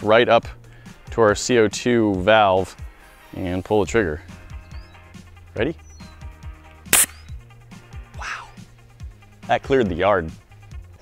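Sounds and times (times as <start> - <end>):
gas blast from inflator valve: 6.9 - 7.4.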